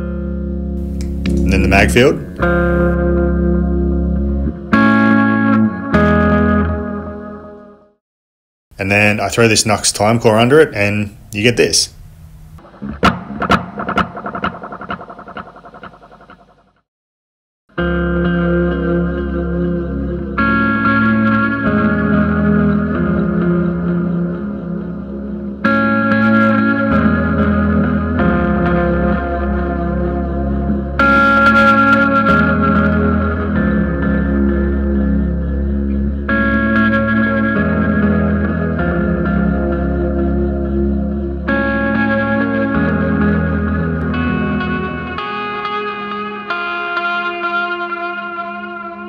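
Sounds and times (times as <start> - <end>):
electric guitar with echoing delay: 0.0 - 7.9, 12.6 - 16.8, 17.8 - 49.0.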